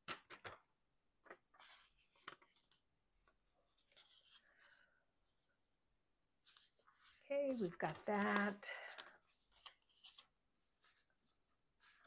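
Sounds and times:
paper rustling: 0:06.4 - 0:12.0.

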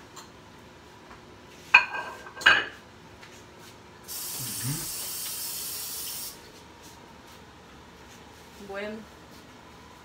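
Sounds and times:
steady high hiss: 0:04.0 - 0:06.4.

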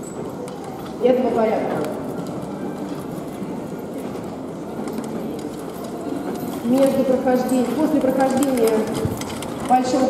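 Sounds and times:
hooves and carriage wheels rumbling: 0:00.0 - 0:10.0.

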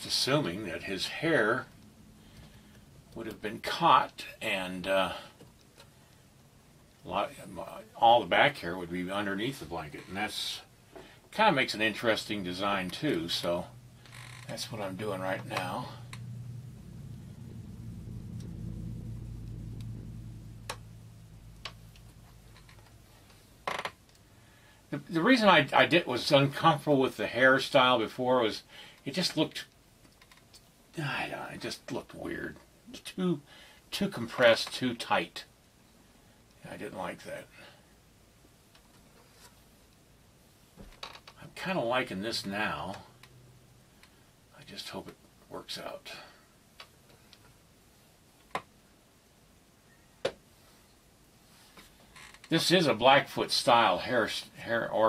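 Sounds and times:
short louder noise: 0:13.4 - 0:23.6.

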